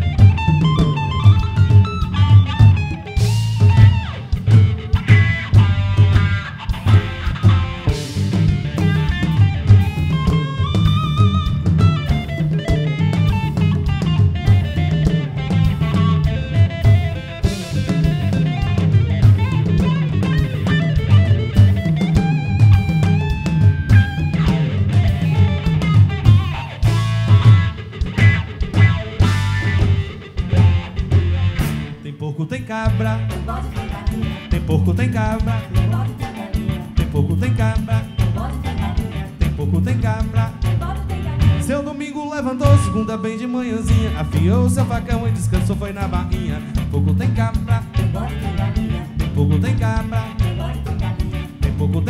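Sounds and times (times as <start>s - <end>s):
drum kit groove: 0.0s - 32.0s, 32.7s - 52.0s
fast electric guitar lead: 0.0s - 52.0s.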